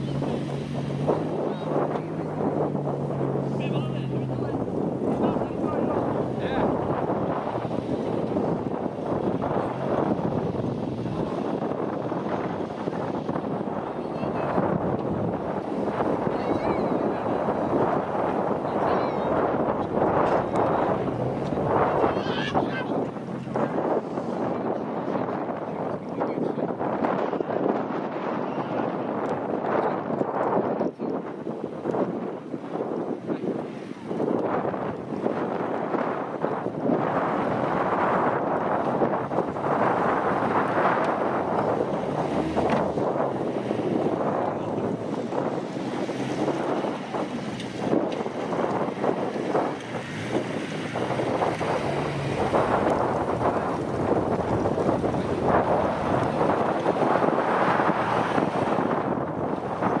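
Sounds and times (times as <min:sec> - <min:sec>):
car engine at low revs: 0:00.0 - 0:24.7, 0:33.0 - 1:00.0
wind buffeting microphone: 0:00.0 - 1:00.0.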